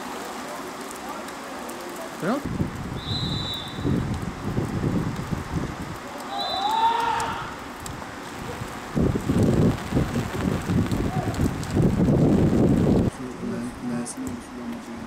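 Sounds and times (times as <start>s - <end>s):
wind buffeting microphone: 2.4s - 6.0s, 7.3s - 13.8s
referee's whistle: 3.0s - 3.9s, 6.3s - 6.8s
person shouting: 6.3s - 7.6s.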